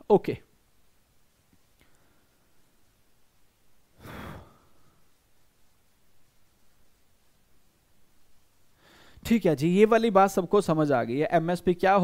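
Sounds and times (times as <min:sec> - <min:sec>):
man sighing: 0:04.0 - 0:04.9.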